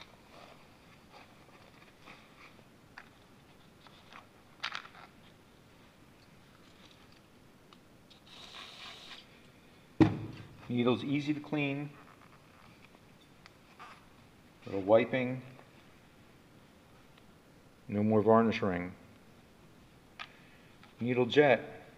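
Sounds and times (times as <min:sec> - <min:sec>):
aerosol can spraying: 0:08.2 - 0:09.2.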